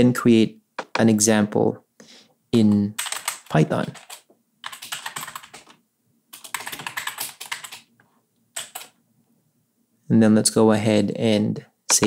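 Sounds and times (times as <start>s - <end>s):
typing on computer keyboard: 2.7s - 7.9s, 8.6s - 9.0s.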